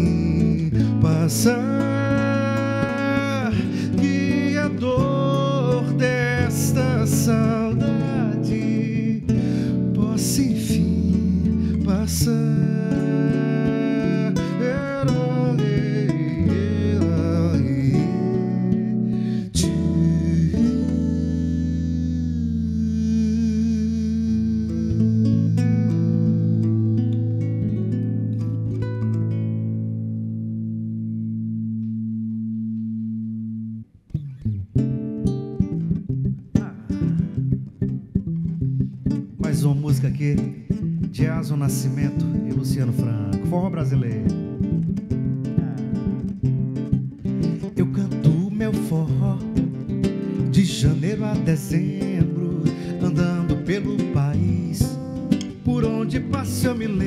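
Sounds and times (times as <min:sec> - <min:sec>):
acoustic guitars picking: 0:00.0 - 0:57.0
guitar strumming: 0:00.0 - 0:57.0.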